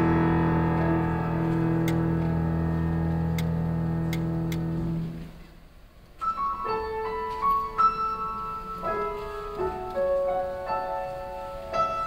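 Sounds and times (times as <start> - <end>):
piano chord ringing: 0.0 - 5.4, 6.2 - 12.0.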